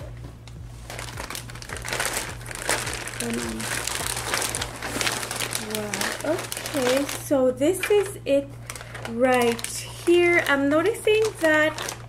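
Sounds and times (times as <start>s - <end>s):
plastic bag crinkling: 0.8s - 12.0s.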